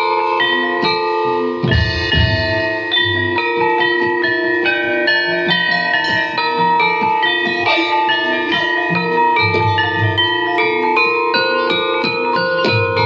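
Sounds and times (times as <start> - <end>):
gamelan metallophones ringing: 0.0 - 13.0.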